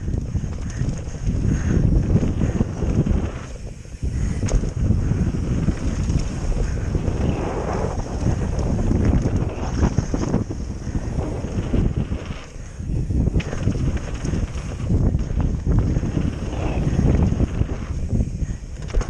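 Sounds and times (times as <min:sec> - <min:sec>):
bike rumble and knocks: 0:00.0 - 0:07.2, 0:07.9 - 0:19.0
wind rushing over microphone: 0:00.0 - 0:19.0.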